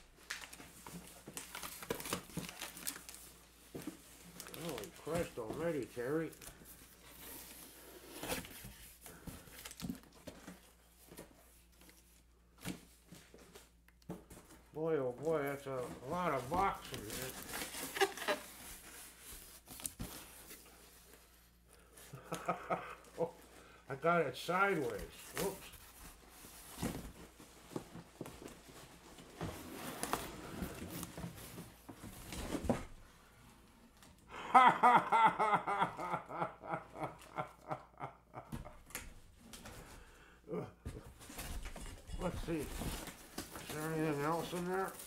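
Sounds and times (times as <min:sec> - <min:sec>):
bubble wrap and cardboard crackling: 0:00.0 - 0:39.9, 0:41.0 - 0:45.0
faint laughter: 0:34.3 - 0:38.8.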